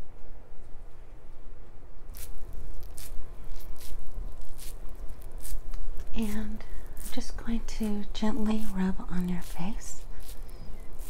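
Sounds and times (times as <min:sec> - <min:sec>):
cotton pad rubbing on microphone: 0:02.2 - 0:11.0
person speaking softly: 0:06.1 - 0:10.1.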